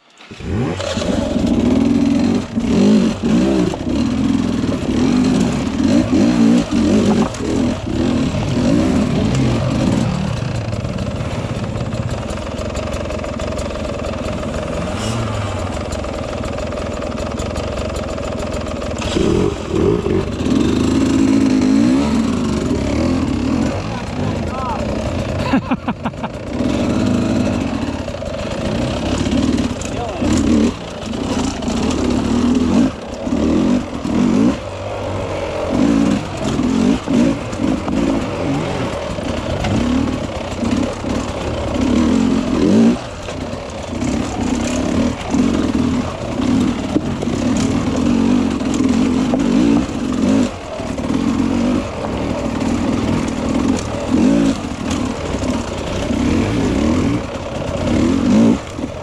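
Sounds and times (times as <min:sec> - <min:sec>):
dirt bike engine revving: 0:00.1 - 0:59.0.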